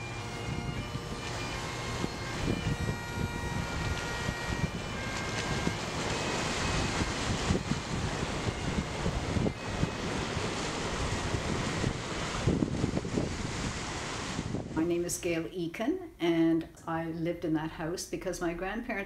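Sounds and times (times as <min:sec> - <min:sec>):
wind buffeting microphone: 0:00.0 - 0:15.5
waves washing over rocks: 0:04.0 - 0:14.9.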